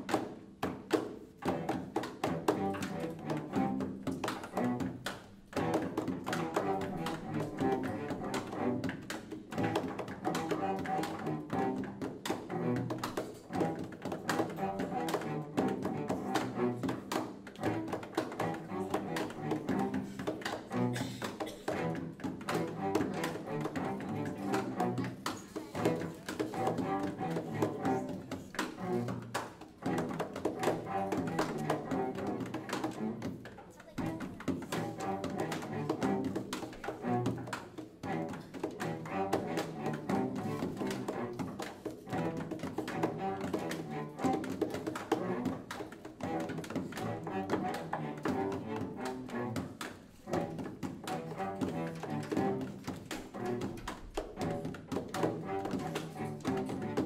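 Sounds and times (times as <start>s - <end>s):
cello ensemble playing: 0.0s - 57.0s
drummed percussion: 0.0s - 57.0s.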